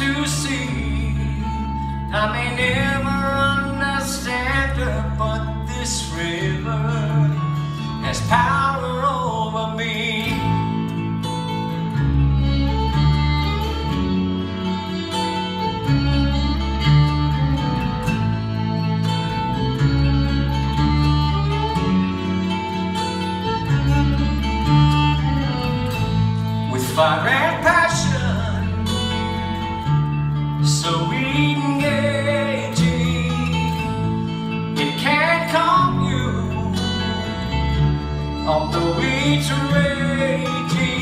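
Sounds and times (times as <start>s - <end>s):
fiddle long held notes: 0.0s - 41.0s
mandolin: 0.0s - 41.0s
strummed acoustic guitars: 0.0s - 41.0s
walking electric bass: 0.0s - 41.0s.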